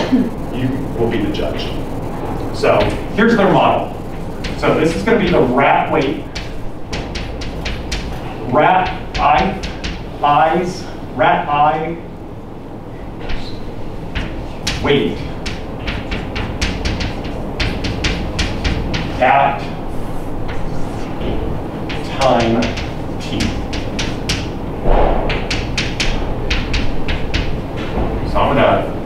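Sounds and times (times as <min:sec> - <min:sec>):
low room rumble: 0:00.0 - 0:29.0
chalk tapping and scraping on chalkboard: 0:04.1 - 0:10.9, 0:13.2 - 0:24.6, 0:25.3 - 0:28.1
dull knock: 0:04.4 - 0:10.2, 0:14.1 - 0:19.4, 0:20.5 - 0:28.2
chalk scratching on blackboard: 0:14.2 - 0:21.3.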